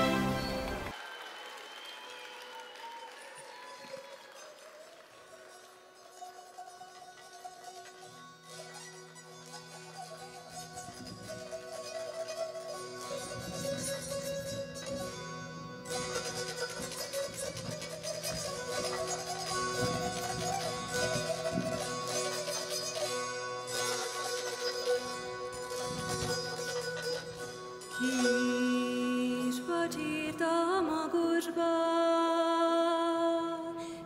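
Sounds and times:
zither strummed with a plectrum: 6.0s - 31.4s.

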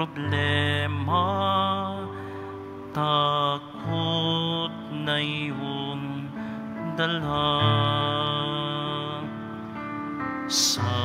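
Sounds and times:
person singing slow song: 0.0s - 11.0s
soft instrumental accompaniment: 0.0s - 11.0s.

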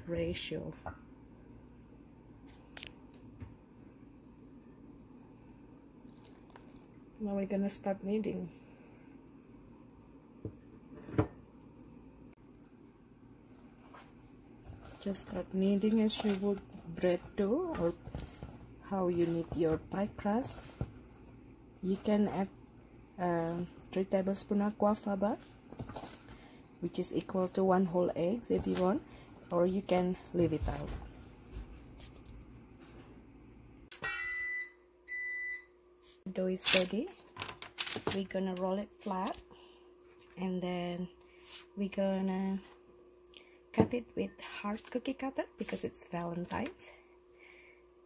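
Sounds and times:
hands working pie dough: 13.4s - 32.2s.

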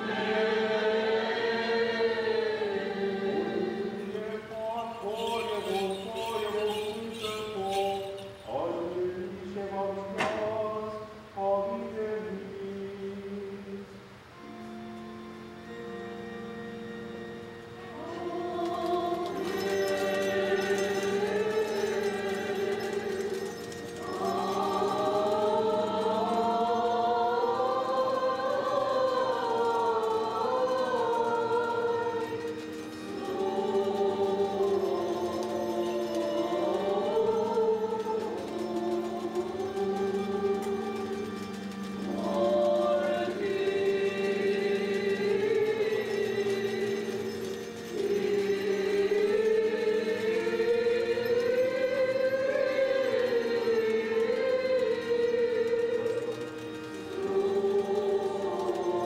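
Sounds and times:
choral chant held note: 0.0s - 13.8s, 17.8s - 59.0s
choir singing a hymn: 0.0s - 14.8s, 15.5s - 59.0s.

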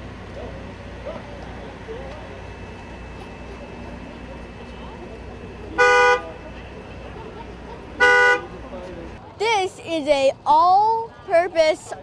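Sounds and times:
vehicle horn honks: 5.8s - 6.4s, 8.0s - 8.5s.

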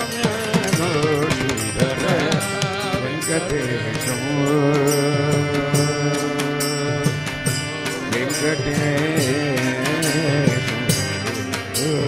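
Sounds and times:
harmonium: 0.0s - 12.0s
sharp percussion strokes: 0.0s - 12.0s
violin: 0.0s - 12.0s
voices singing: 0.0s - 12.0s.

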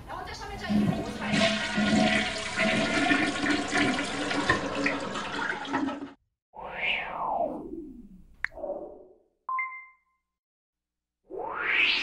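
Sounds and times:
toilet flushing: 0.4s - 6.2s.

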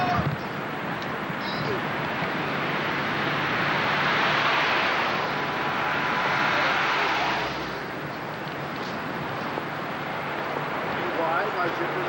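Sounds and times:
car road and wind noise: 0.0s - 12.0s.

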